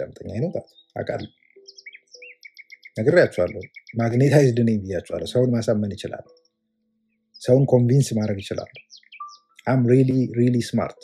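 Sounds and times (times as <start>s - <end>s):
person speaking: 0.0s - 1.3s, 3.0s - 6.3s, 9.6s - 11.0s
small bird chirping: 0.0s - 11.0s.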